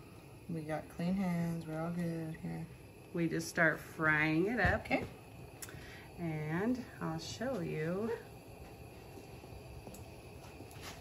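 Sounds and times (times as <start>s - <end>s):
gas burner hissing: 0.0s - 11.0s.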